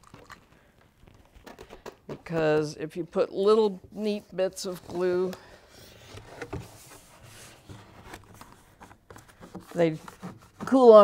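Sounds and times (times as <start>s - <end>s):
cardboard rubbing: 4.9s - 11.0s.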